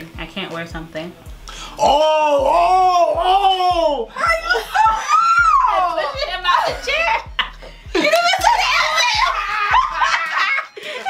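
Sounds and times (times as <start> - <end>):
people squealing: 1.8 - 7.2, 8.3 - 10.7
adults laughing: 5.8 - 11.0.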